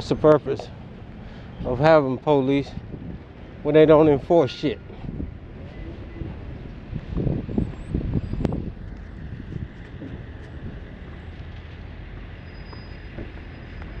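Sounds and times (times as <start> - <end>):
road traffic: 0.0 - 14.0
wind rumble: 0.0 - 14.0.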